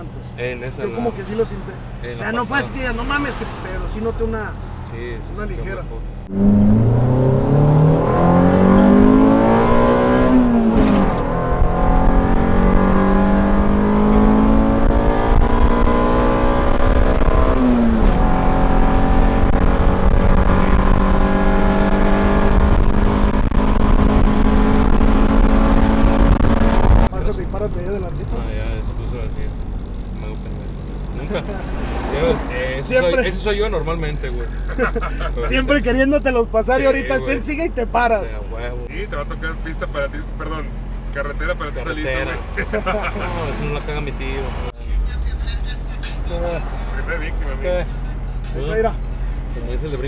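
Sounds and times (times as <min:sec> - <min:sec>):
car engine revving under full throttle: 0:06.1 - 0:34.2, 0:39.2 - 0:50.0
low engine hum: 0:36.5 - 0:50.0.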